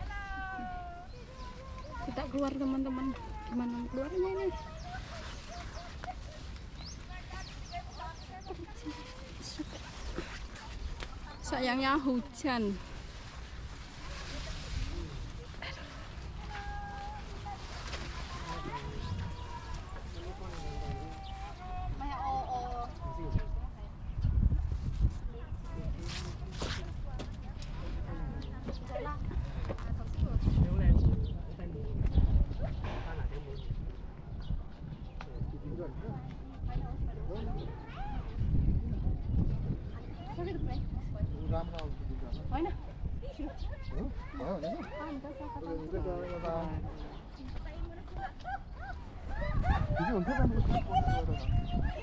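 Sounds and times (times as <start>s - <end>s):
faint voices talking: 0.0s - 52.0s
wind rumbling on microphone: 0.0s - 52.0s.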